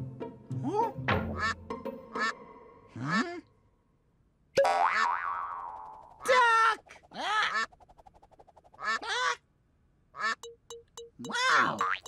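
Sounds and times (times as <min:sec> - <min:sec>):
cartoon music with bass tune: 0:10.3 - 0:12.0
springy boing pitch glides: 0:10.4 - 0:12.0.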